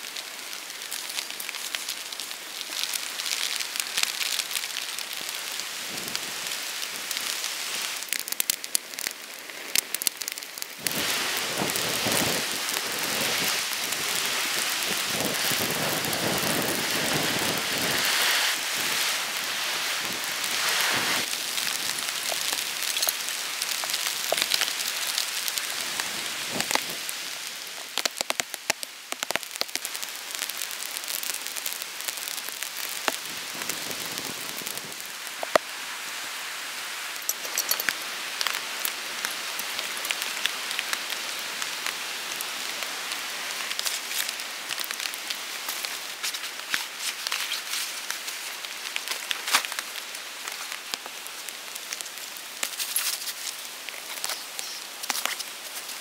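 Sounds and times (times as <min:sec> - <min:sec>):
rain falling: 0:00.0 - 0:56.0
raindrops ticking: 0:21.4 - 0:25.7, 0:27.8 - 0:33.3.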